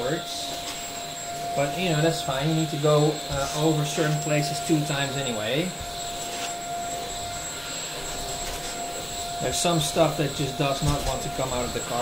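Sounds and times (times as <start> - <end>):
vacuum cleaner motor whine: 0.0 - 12.0.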